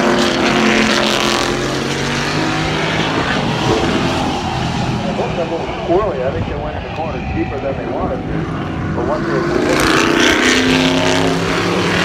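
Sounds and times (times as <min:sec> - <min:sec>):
race car engines running hard: 0:00.0 - 0:12.0.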